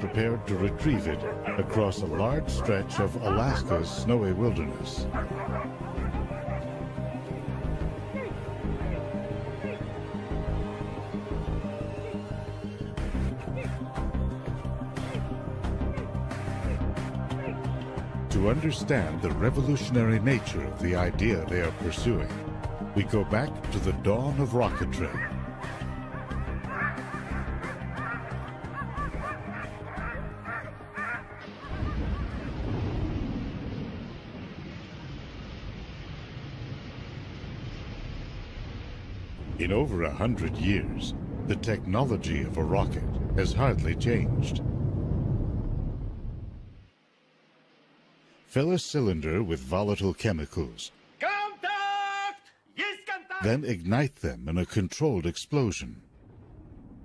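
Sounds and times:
dogs barking: 0.0 - 4.1, 5.0 - 7.5, 8.1 - 10.0, 15.0 - 17.8, 24.7 - 32.5
background music: 0.0 - 34.0, 39.4 - 44.6
rocket launch rumble: 31.7 - 46.9, 56.0 - 57.0.

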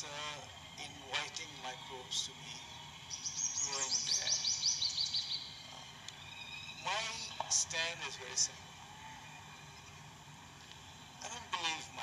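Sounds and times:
faint steady high tones: 0.0 - 12.0
bird singing rapid high notes: 2.6 - 7.4.

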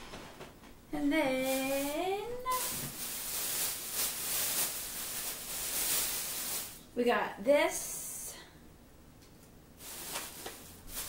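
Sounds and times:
plastic bags rustling: 0.0 - 7.0, 9.8 - 11.0.

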